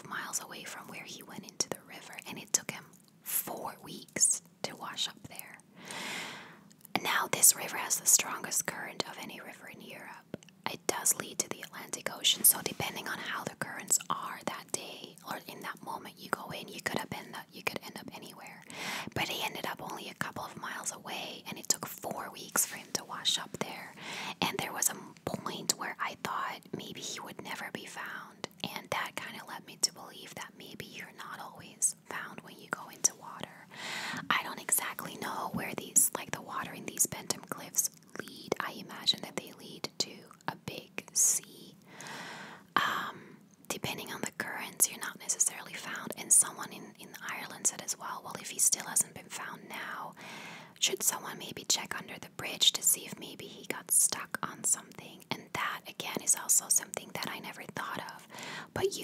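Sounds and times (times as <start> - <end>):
woman whispering: 0.0 - 5.6, 6.9 - 41.8, 42.7 - 50.2, 50.8 - 59.0.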